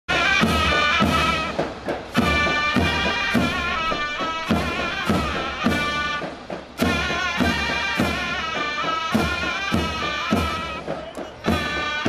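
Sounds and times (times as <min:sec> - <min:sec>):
shrill reed pipe melody: 0:00.1 - 0:12.0.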